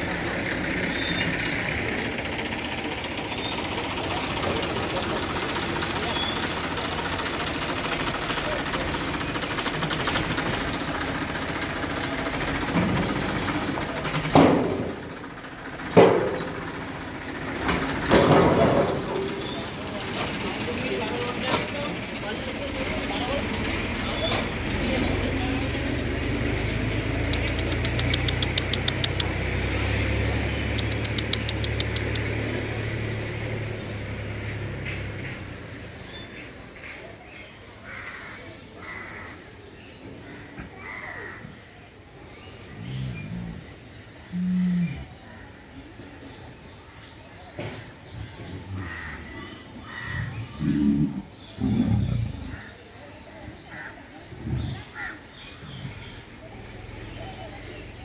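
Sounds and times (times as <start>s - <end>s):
visitors talking: 0.0s - 58.0s
lion roaring low rumble: 42.7s - 45.3s, 48.4s - 52.8s, 54.2s - 56.5s.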